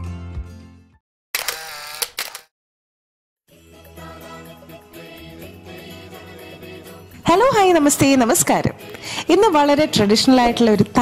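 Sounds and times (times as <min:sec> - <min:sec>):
sharp clicks: 0:01.4 - 0:02.5.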